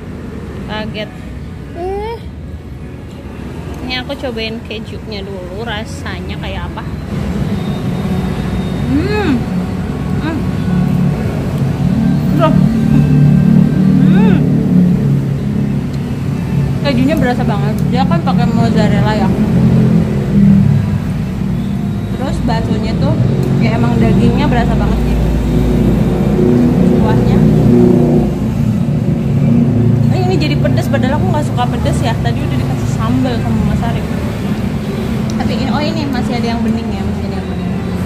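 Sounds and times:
woman humming: 1.8s - 2.3s, 8.9s - 9.6s, 10.2s - 10.6s, 13.9s - 14.5s
loud low hum with pitched tones: 6.5s - 37.0s.

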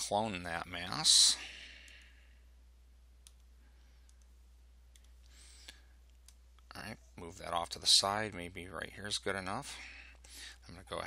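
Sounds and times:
faint clicks: 3.2s - 6.7s.

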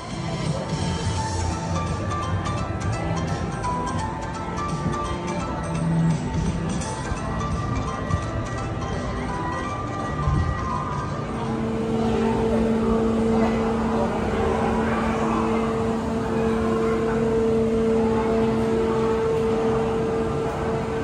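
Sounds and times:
low machine hum: 0.0s - 21.0s
din of people: 11.2s - 21.0s.

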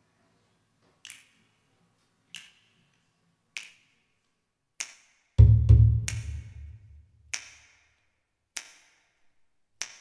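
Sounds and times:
finger snaps: 1.0s - 1.5s, 2.3s - 2.8s, 3.5s - 4.0s, 4.8s - 5.2s, 7.3s - 7.7s, 8.6s - 9.0s, 9.8s - 10.0s.

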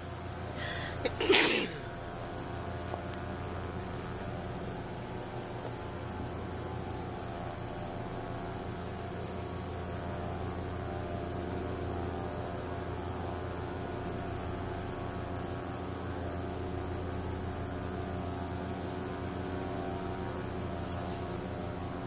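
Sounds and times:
insects trilling: 0.0s - 22.0s.

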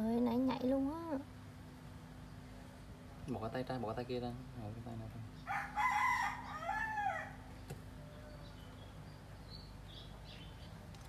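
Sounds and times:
rooster crowing: 5.4s - 8.6s.

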